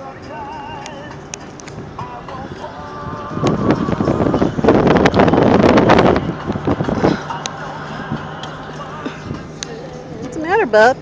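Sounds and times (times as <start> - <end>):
car engine and road hum: 0.0 - 11.0
wind buffeting microphone: 1.1 - 11.0.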